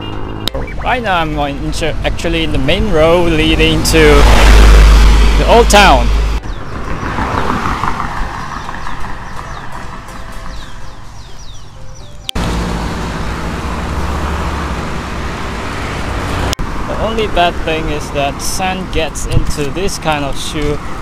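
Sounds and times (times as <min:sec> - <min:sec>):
roadside traffic noise: 0:00.0 - 0:21.0
high chirping music notes: 0:09.4 - 0:14.1.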